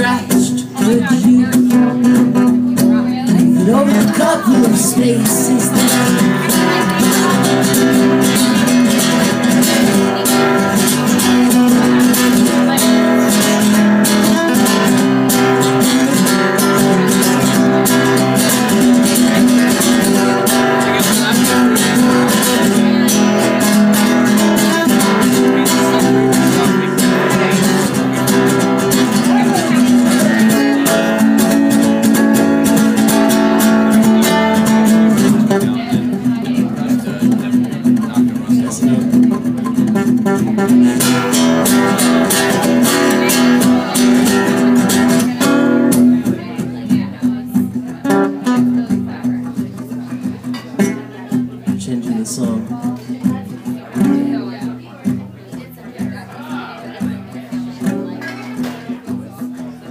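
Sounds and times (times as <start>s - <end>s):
classical guitar strumming: 0.0s - 59.9s.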